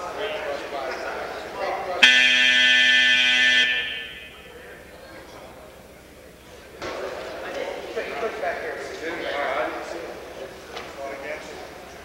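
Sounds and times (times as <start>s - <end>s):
scoreboard buzzer: 2.0s - 4.4s.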